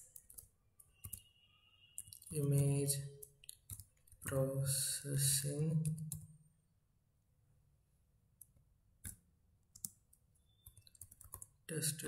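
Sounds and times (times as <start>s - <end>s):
computer keyboard keys clicking: 0.1s - 1.3s, 3.2s - 4.3s, 9.0s - 10.0s, 10.6s - 11.5s.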